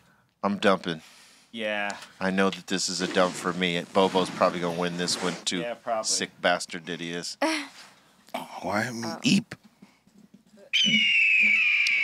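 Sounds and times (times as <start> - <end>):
whistled bird call: 10.7 - 12.0.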